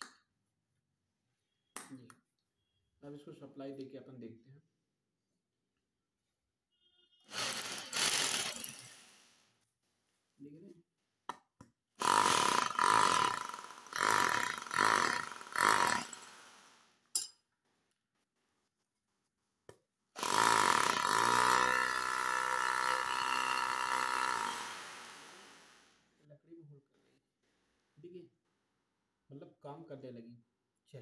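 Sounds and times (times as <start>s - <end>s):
electric hammer drill running: 7.3s - 9.1s, 12.0s - 16.7s, 20.2s - 25.9s.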